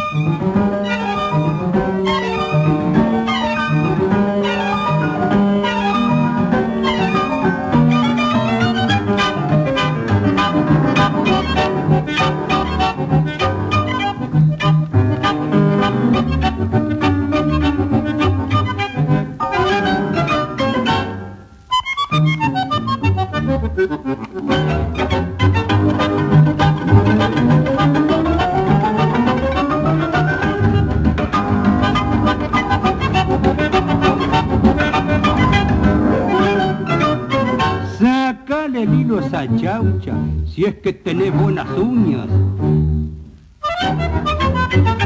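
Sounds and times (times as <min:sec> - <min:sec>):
instrumental tango music: 0:00.0 - 0:45.0.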